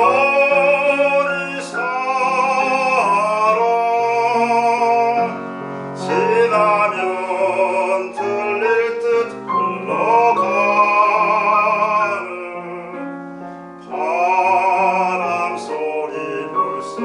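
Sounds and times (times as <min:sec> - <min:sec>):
grand piano accompaniment: 0:00.0 - 0:17.0
man singing with vibrato: 0:00.0 - 0:17.0.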